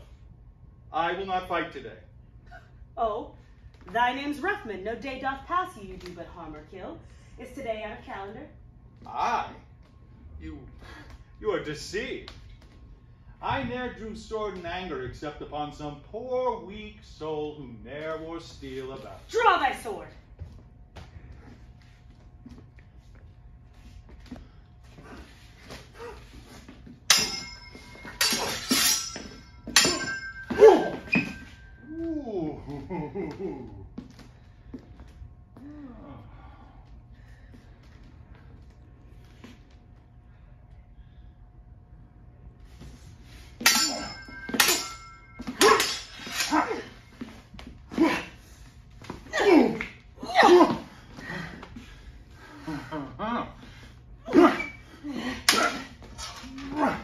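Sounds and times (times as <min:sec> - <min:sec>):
swords clashing: 0:27.1 - 0:31.8, 0:43.6 - 0:47.0, 0:54.3 - 0:54.8, 0:55.4 - 0:57.0.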